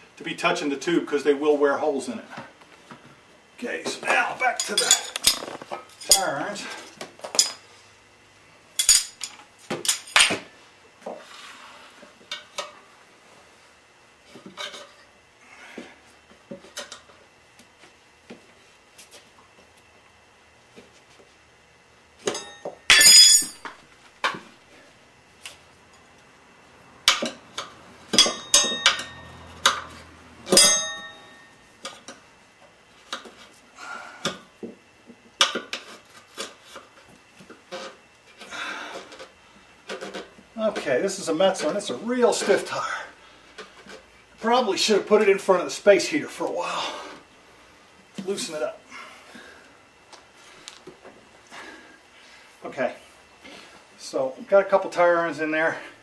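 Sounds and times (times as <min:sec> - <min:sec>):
tire irons clinking on wheel rim: 0:22.2 - 0:23.8, 0:27.0 - 0:32.2.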